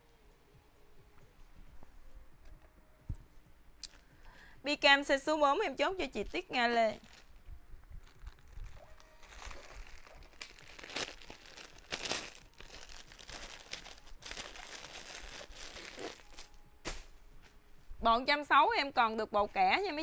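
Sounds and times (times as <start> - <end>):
plastic bags crinkling: 6.2 - 17.1.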